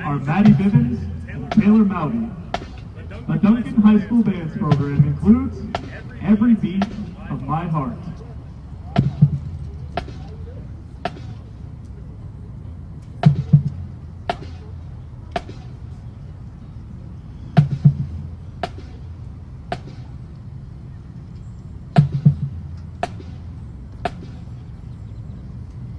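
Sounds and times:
low background rumble: 0:00.0 - 0:25.9.

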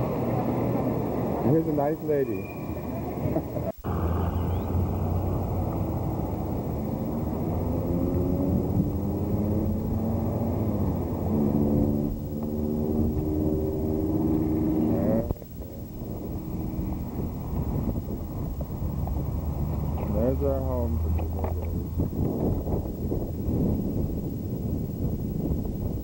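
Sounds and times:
vehicle engine rumbling: 0:00.0 - 0:26.0.

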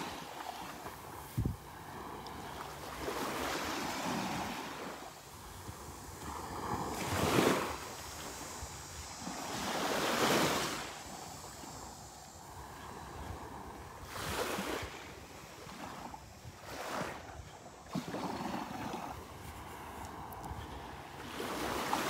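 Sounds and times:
small waves breaking on sandy shore: 0:00.0 - 0:22.0.

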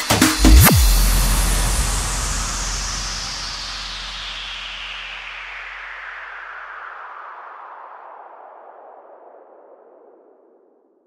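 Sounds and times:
synthesized noise sweep falling in pitch: 0:00.4 - 0:06.2.

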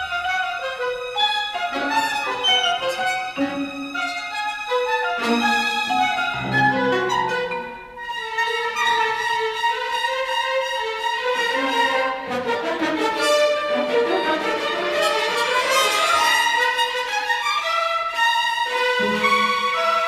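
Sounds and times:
symphony orchestra playing: 0:03.4 - 0:09.4, 0:11.7 - 0:16.8.

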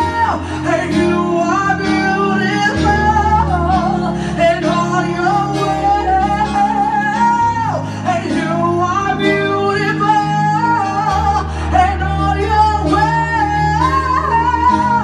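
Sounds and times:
electronic keyboard chords: 0:00.0 - 0:15.0
woman singing: 0:00.0 - 0:15.0.

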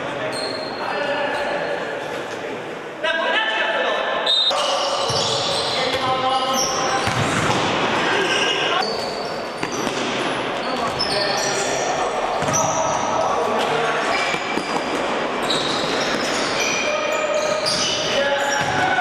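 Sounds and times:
shoes squeaking on court floor: 0:00.2 - 0:02.4, 0:04.4 - 0:18.9.

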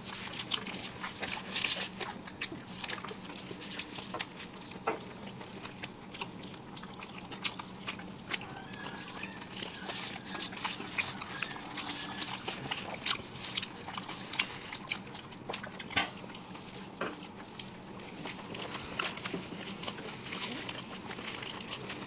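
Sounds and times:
faint low hum: 0:00.0 - 0:22.0
people chewing and biting: 0:00.0 - 0:22.0.

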